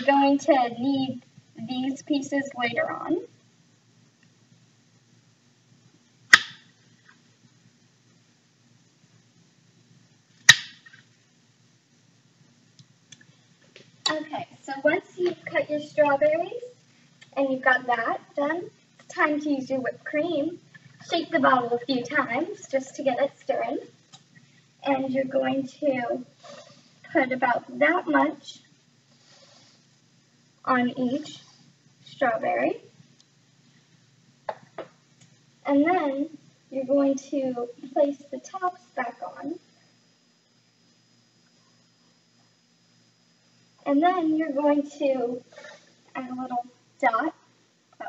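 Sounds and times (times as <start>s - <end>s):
faint room hum: 0.0s - 48.0s.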